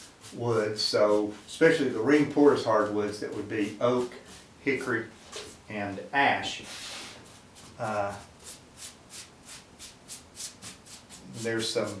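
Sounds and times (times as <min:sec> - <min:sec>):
paintbrush swishing on wood: 0:00.0 - 0:05.6, 0:06.6 - 0:12.0.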